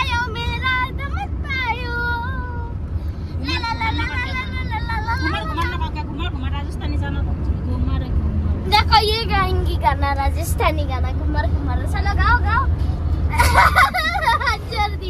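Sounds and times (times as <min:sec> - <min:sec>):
car cabin rumble: 0:00.0 - 0:15.0.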